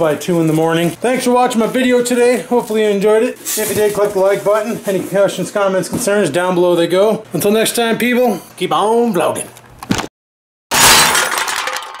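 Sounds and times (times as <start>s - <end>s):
glass shattering crash effect: 10.7s - 12.0s.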